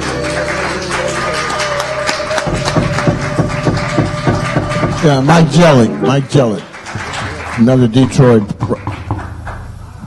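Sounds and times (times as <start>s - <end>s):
quick percussive taps: 2.4s - 6.0s, 8.6s - 9.6s.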